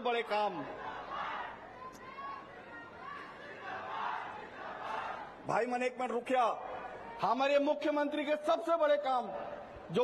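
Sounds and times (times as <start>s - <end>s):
large crowd shouting and cheering: 0.0s - 5.7s.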